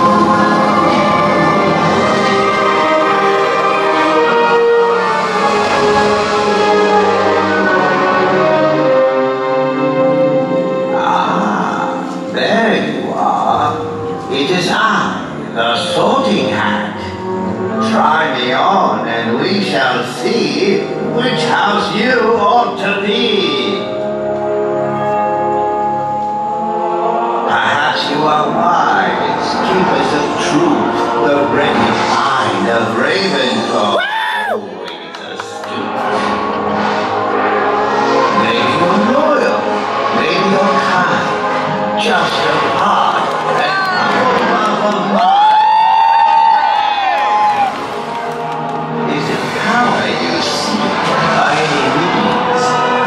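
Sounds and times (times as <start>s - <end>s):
crowd cheering and whooping: 33.9s - 36.1s, 43.4s - 48.8s.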